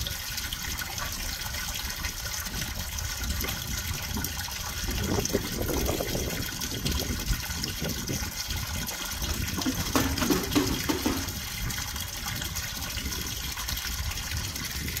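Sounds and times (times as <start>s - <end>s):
water pouring and splashing: 0.0s - 15.0s
short knocks: 9.6s - 11.4s.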